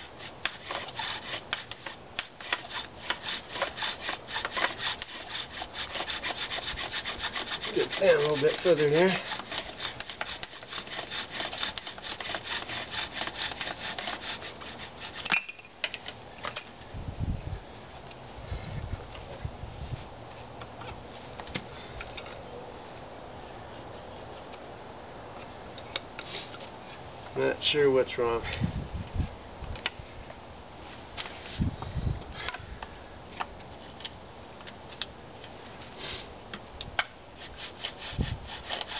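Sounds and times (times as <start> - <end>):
wooden spindle grinding in fireboard: 0.0 - 15.6.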